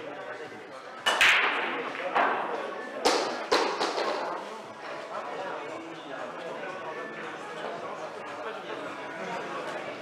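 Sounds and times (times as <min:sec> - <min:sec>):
pool balls clacking: 0:01.1 - 0:04.4.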